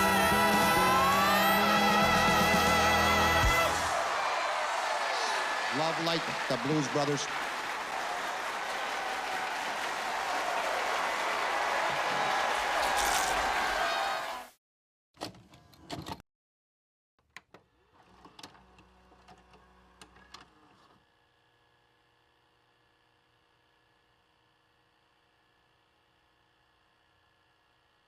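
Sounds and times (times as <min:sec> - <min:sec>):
crowd applauding and cheering: 0:00.0 - 0:14.6.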